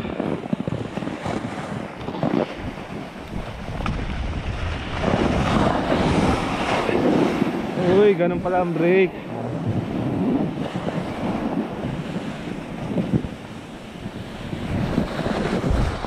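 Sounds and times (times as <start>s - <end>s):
snowboard scraping over snow: 0.0s - 16.0s
wind buffeting microphone: 0.0s - 16.0s.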